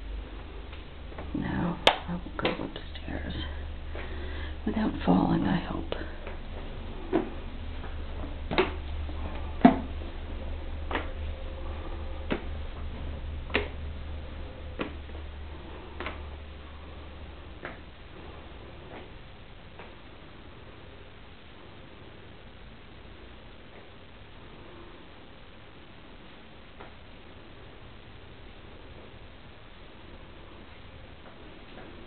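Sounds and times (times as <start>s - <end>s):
low steady hum: 0.0s - 32.0s
steady hiss: 0.0s - 32.0s.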